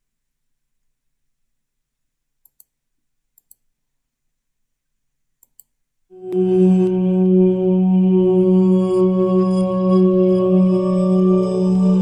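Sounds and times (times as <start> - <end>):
computer mouse clicking: 2.4 - 2.8, 3.4 - 3.7, 5.4 - 5.8.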